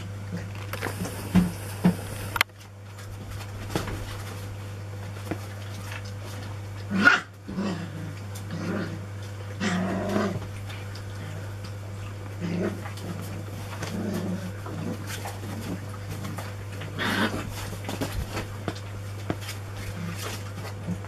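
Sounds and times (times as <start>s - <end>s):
puppies growling in play: 0.0s - 2.4s, 3.1s - 21.0s.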